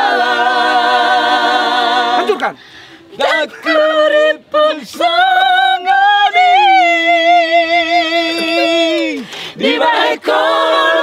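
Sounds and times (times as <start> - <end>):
group singing a cappella: 0.0 - 11.0.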